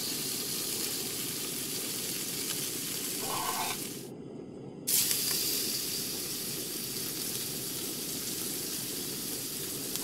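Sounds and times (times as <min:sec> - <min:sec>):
frying sizzle in a pan: 0:00.0 - 0:04.1, 0:04.9 - 0:10.0.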